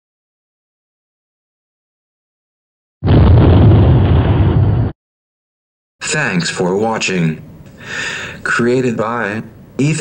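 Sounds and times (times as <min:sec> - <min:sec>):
explosion blast with deep rumble: 0:03.0 - 0:05.0.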